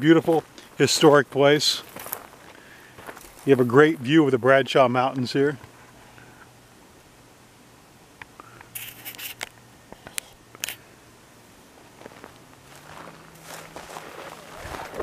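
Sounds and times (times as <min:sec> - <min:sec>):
distant highway traffic hum: 0:00.0 - 0:15.0
scrapes and rustling: 0:08.8 - 0:10.3.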